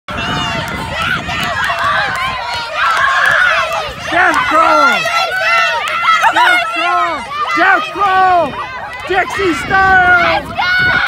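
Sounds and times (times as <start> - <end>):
girls shouting and cheering: 0.1 - 11.0
loud shouting voice: 4.0 - 11.0.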